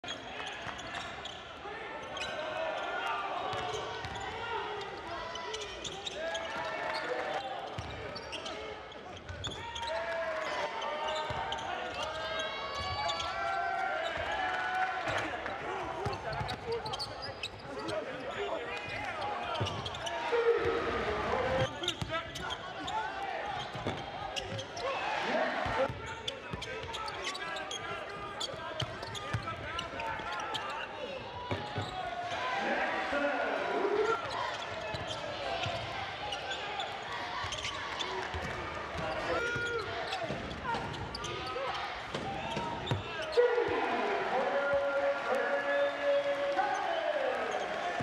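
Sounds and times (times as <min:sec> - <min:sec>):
players and crowd voices: 0:00.0 - 0:48.0.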